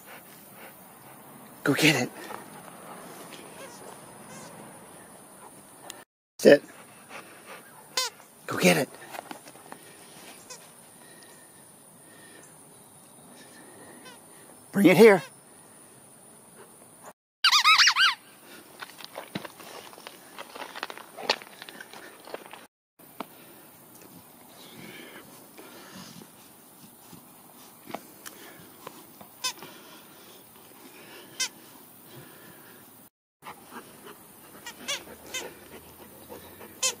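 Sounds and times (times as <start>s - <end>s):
dog toy squeaking: 17.4s - 18.2s, 34.6s - 35.4s.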